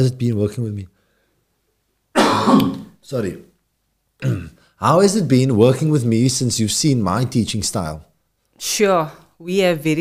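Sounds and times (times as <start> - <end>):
man coughing: 2.2 - 2.9, 4.2 - 4.6.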